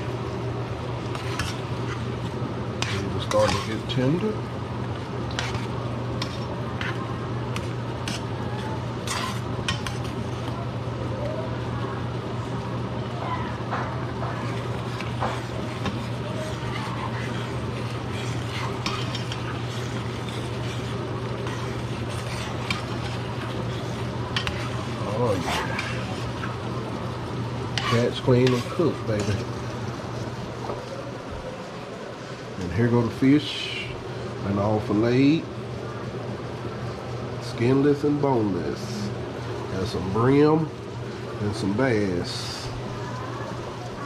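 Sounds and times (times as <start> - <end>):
pasta sizzling and bubbling: 0.0 - 44.0
steady low hum: 0.0 - 44.0
spoon scraping against pan: 1.0 - 4.4, 5.2 - 10.4, 14.4 - 29.6.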